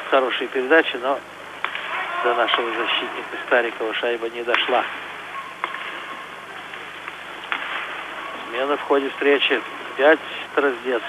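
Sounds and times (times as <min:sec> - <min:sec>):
crowd murmur: 0:01.2 - 0:11.0
faint tone: 0:05.2 - 0:06.6
hockey sticks clicking on puck: 0:05.6 - 0:06.1, 0:06.7 - 0:08.0.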